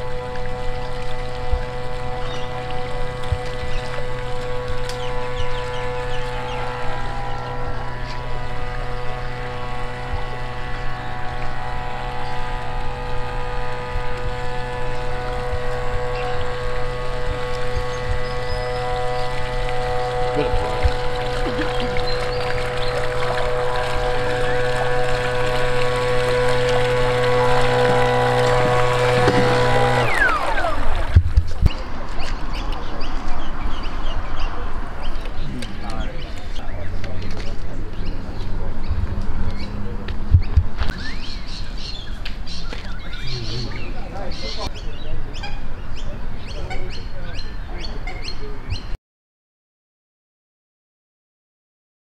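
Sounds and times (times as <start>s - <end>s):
sustained music chord: 0.0s - 31.1s.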